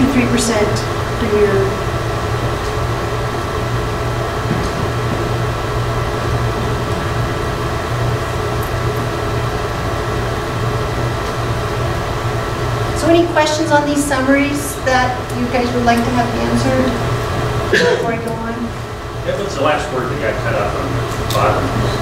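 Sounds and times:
fan hum: 0:00.0 - 0:22.0.

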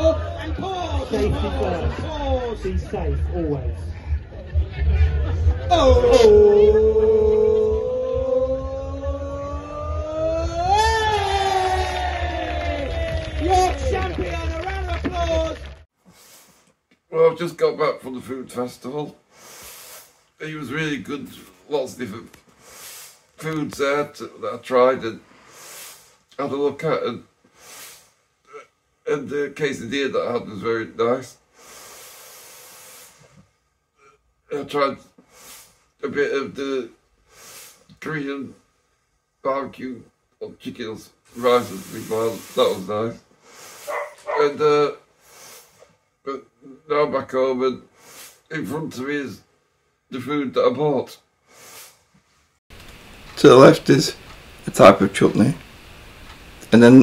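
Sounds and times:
person singing a long note: 0:05.7 - 0:11.1
air hissing through mask: 0:16.0 - 0:16.7, 0:19.3 - 0:20.2, 0:22.6 - 0:23.4, 0:25.3 - 0:26.3, 0:27.5 - 0:28.3, 0:31.5 - 0:33.5, 0:35.2 - 0:36.0, 0:37.2 - 0:38.0, 0:41.3 - 0:44.3, 0:45.1 - 0:46.0, 0:47.9 - 0:48.5, 0:51.4 - 0:52.2.

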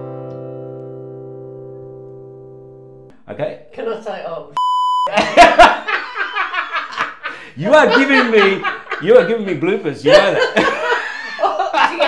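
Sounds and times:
people talking: 0:03.3 - 0:05.5, 0:07.6 - 0:12.0
censor bleep: 0:04.6 - 0:05.1
people laughing: 0:05.1 - 0:12.0.

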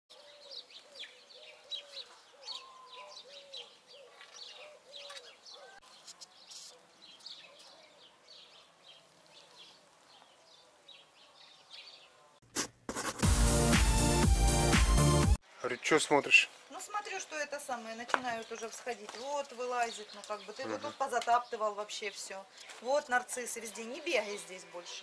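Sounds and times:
lower repeated bird call: 0:00.1 - 0:09.6
songbirds chirping and twittering: 0:00.1 - 0:12.4, 0:15.4 - 0:25.0.

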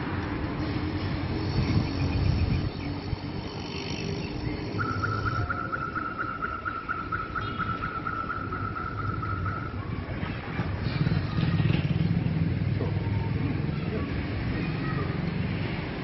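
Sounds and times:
motor vehicle passing by: 0:00.0 - 0:16.0
high pulsing tone: 0:04.2 - 0:09.8.

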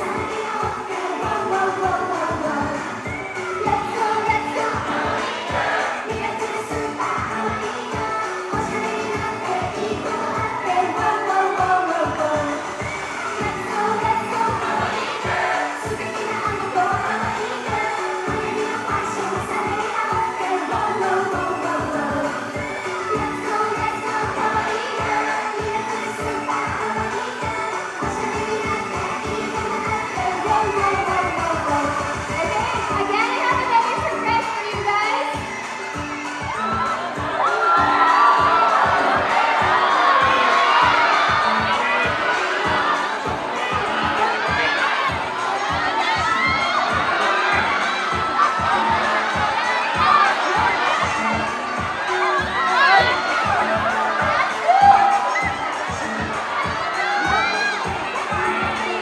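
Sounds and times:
crowd cheering and screaming: 0:00.0 - 0:59.0
upbeat pop song over sound system: 0:00.0 - 0:59.0.

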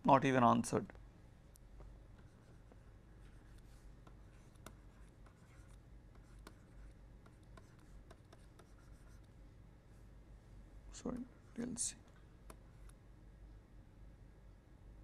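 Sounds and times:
stylus scratching on tablet: 0:02.1 - 0:10.1, 0:12.4 - 0:13.0.

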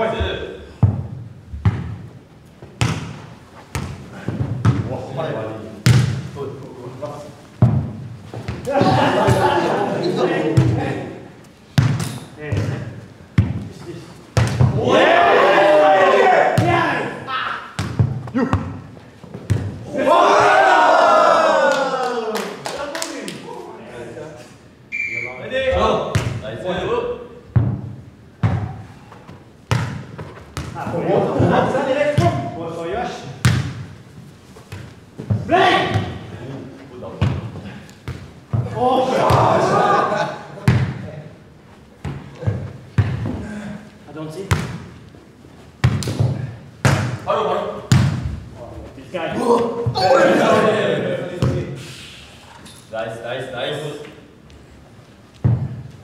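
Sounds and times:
players shouting: 0:08.6 - 0:11.1, 0:14.7 - 0:17.8, 0:19.8 - 0:23.8, 0:38.6 - 0:40.5, 0:49.2 - 0:51.4
crowd cheering: 0:08.7 - 0:10.6, 0:14.8 - 0:16.8, 0:19.8 - 0:23.7, 0:38.8 - 0:40.4, 0:49.4 - 0:51.2.

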